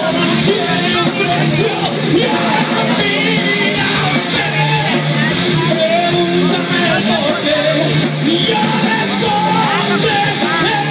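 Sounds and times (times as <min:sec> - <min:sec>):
drums: 0:00.0 - 0:10.9
electric guitars: 0:00.0 - 0:10.9
person singing: 0:00.0 - 0:10.9.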